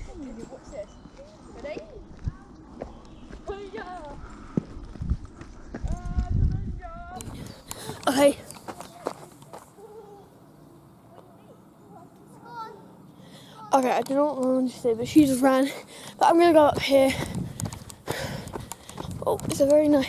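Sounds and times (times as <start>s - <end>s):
footsteps on concrete: 1.0s - 6.6s, 7.2s - 9.8s, 16.3s - 20.0s
distant voices calling out: 5.9s - 20.0s.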